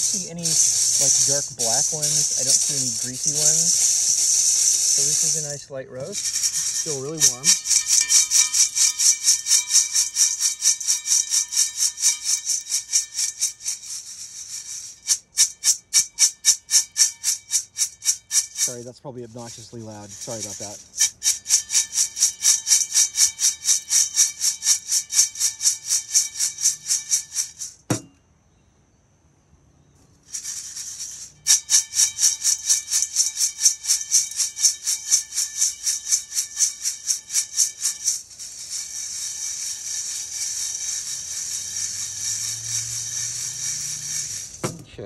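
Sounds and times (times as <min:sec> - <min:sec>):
metal colander ringing: 0:00.0 - 0:03.9, 0:06.1 - 0:13.2
coffee beans rattling in metal colander: 0:00.0 - 0:28.0, 0:30.2 - 0:45.0.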